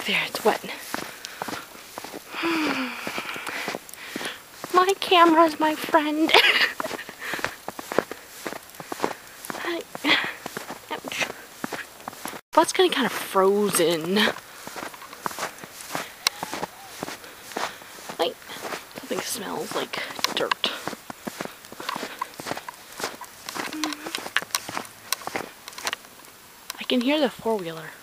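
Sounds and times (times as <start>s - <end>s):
woman speaking: 0.0s - 0.9s, 4.7s - 7.1s, 9.5s - 11.4s, 12.6s - 14.4s, 18.1s - 20.9s, 23.7s - 24.2s, 26.7s - 28.0s
footsteps in snow: 0.0s - 26.0s
breathy sigh: 2.3s - 4.4s.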